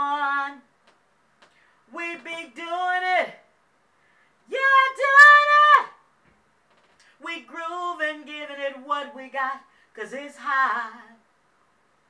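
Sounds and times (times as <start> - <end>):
woman singing a cappella: 0.0 - 1.0, 1.8 - 3.5, 4.4 - 6.1, 7.0 - 11.3.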